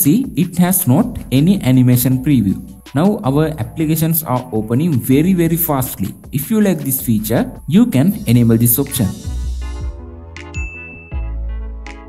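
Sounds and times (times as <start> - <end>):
low bass tone: 0.0 - 11.9
bright chime ding: 10.5 - 11.2
high steady tone: 10.5 - 11.2.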